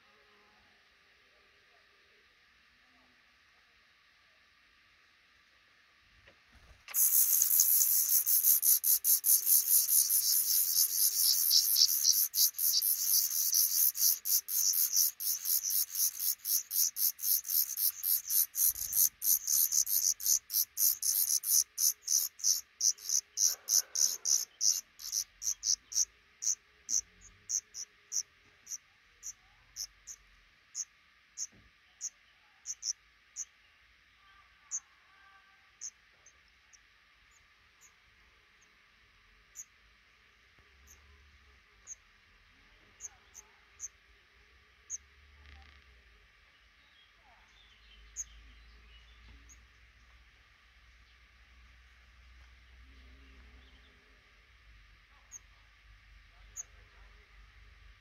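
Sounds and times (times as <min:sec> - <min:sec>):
nestlings cheeping: 0:06.9 - 0:33.6.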